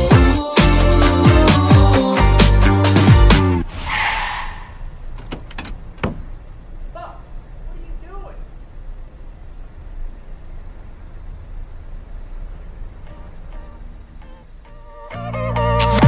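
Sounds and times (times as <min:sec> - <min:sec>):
vehicle engine rumbling: 0:03.6 - 0:15.8.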